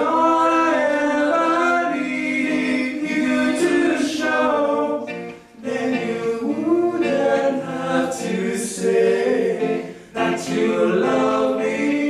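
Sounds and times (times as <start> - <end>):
vocal group singing in harmony: 0.0 - 12.0.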